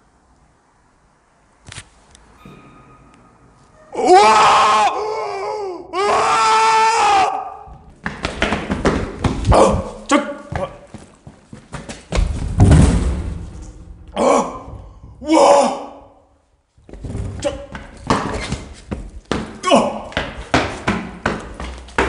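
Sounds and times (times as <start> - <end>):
high wavering cry: 2.4 - 7.5
heavy thumps: 12.1 - 15.4
knocks and rustles of movement: 16.7 - 19.6.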